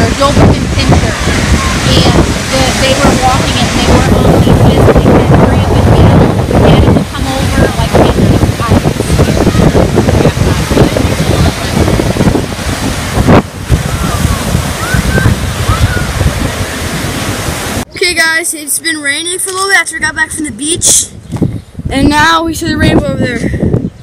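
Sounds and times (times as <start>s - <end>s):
person speaking: 0.0s - 9.4s
waves breaking on shore: 0.0s - 17.9s
wind buffeting microphone: 0.0s - 24.0s.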